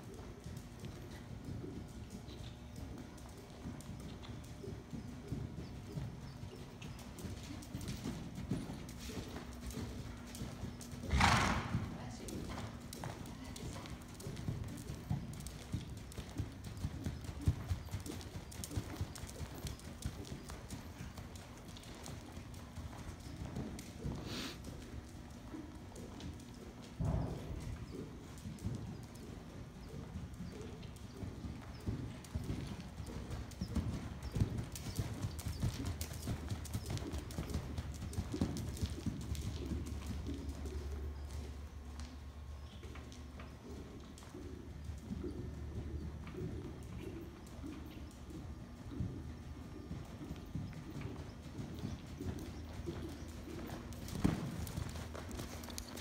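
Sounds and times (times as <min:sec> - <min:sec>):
horse hoofbeats on sand: 0:00.1 - 0:56.0.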